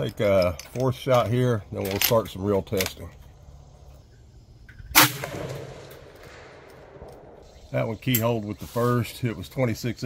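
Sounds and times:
rifle shot echoing: 0:04.9 - 0:07.5.

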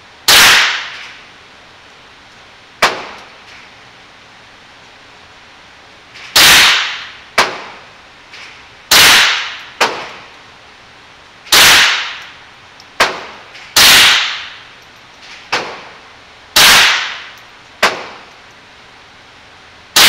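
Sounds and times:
sharp quieter crack: 0:00.3 - 0:01.1, 0:16.6 - 0:18.2
pistol shots echoing: 0:16.6 - 0:18.2.

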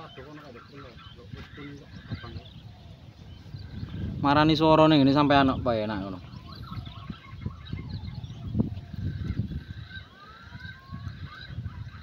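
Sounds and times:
birds calling: 0:00.0 - 0:12.0.

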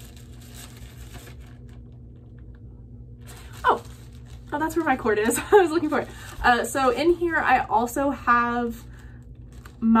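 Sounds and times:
fabric sack rustling and crinkling: 0:00.0 - 0:02.0, 0:03.2 - 0:07.3, 0:08.6 - 0:10.0.

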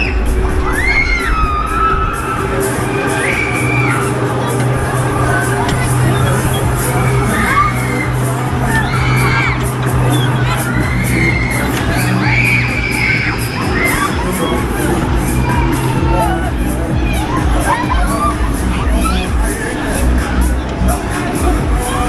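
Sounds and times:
constant low hum: 0:00.0 - 0:22.0
loud ride music with beat: 0:00.0 - 0:22.0
riders screaming and shouting: 0:00.0 - 0:22.0.

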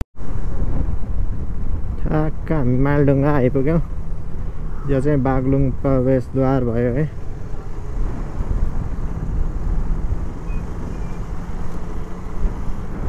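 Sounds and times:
motorcycle engine rumbling: 0:00.2 - 0:13.0.

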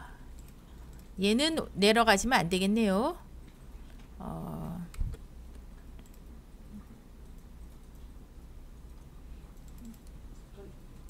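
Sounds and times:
person humming: 0:04.2 - 0:05.0.

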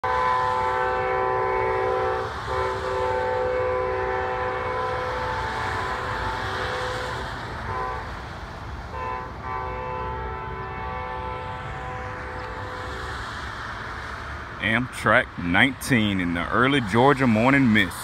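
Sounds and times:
locomotive air horn blasts: 0:00.0 - 0:08.2, 0:08.9 - 0:13.1.

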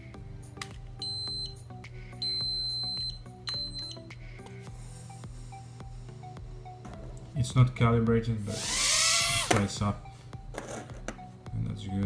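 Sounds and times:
background music: 0:00.0 - 0:12.0.

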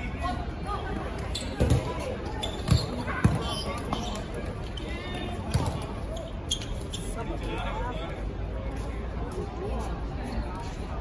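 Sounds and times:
dodgeballs thudding: 0:01.6 - 0:04.2, 0:05.4 - 0:06.0.

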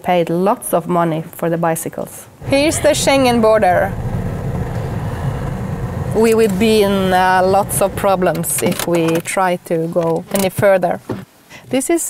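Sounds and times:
car engine and tyre rumble: 0:02.4 - 0:09.5.

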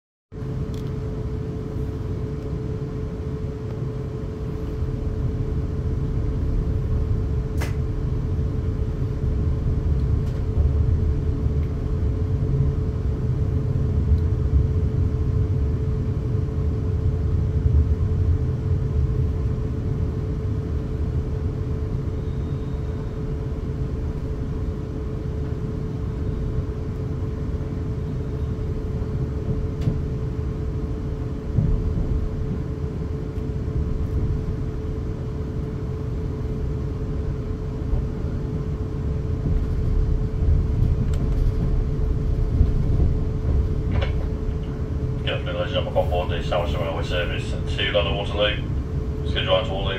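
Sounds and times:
rumble of train wheels: 0:00.3 - 0:49.9.

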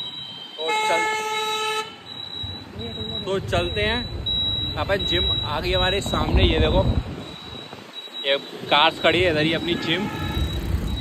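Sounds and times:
vehicle horn honking: 0:00.5 - 0:02.1, 0:09.4 - 0:10.8.

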